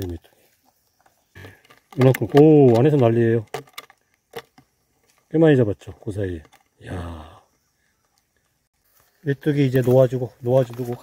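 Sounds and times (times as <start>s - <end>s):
man speaking: 9.2s - 11.0s.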